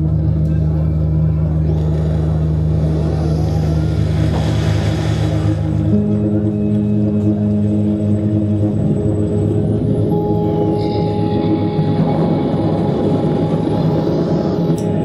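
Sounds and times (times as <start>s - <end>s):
electronic drone music: 0.0s - 15.0s.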